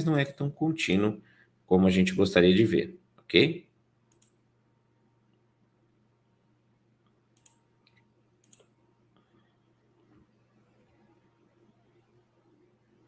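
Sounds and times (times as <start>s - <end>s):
faint computer mouse clicks: 4.1s - 4.4s, 7.0s - 9.3s.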